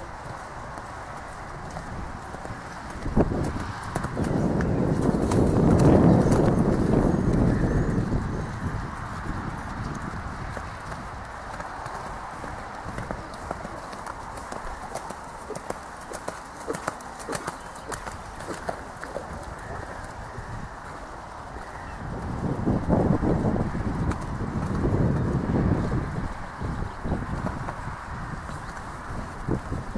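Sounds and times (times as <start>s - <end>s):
horse hoofbeats on sand: 0.0s - 29.9s.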